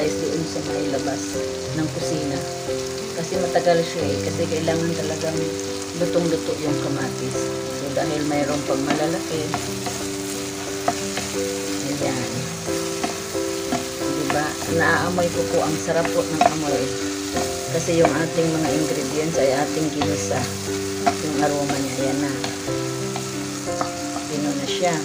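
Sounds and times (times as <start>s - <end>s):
food sizzling in hot oil: 0.0s - 25.0s
soft background music: 0.0s - 25.0s.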